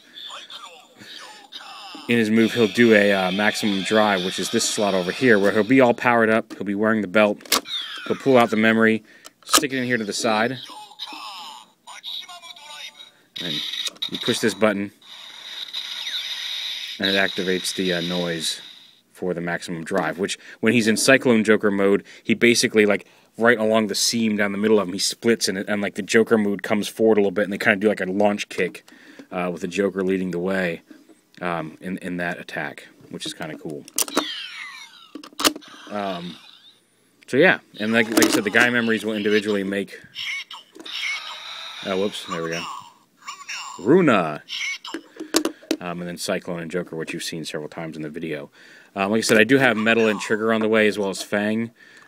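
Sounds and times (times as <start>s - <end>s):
spoken word: 0.2s - 5.8s
tinny electronic toy sound: 10.6s - 19.0s, 49.6s - 50.7s.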